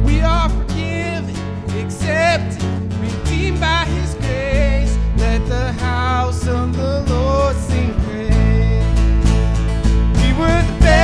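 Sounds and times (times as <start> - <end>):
bass: 0.0 - 11.0
keyboard: 0.0 - 11.0
strummed acoustic guitars: 0.0 - 11.0.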